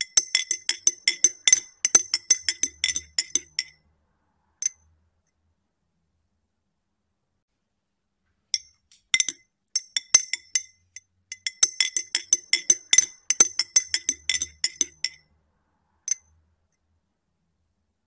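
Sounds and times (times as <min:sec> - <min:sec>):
teaspoon clinking in glass: 0:00.0 - 0:03.7, 0:08.6 - 0:15.2.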